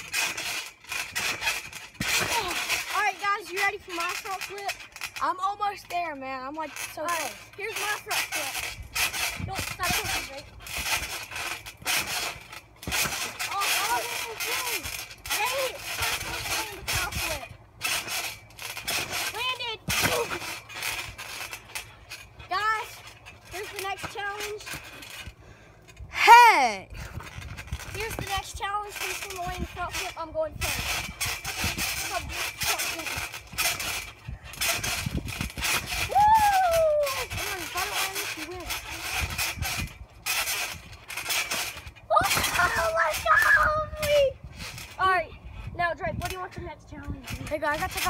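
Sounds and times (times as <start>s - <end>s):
trampoline mat thudding and rattling: 0.0s - 48.0s
boys' wordless cries: 26.1s - 26.9s.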